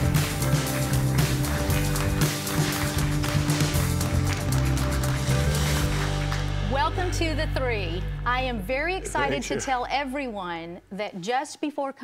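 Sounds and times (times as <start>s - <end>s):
drum kit: 0.0s - 9.5s.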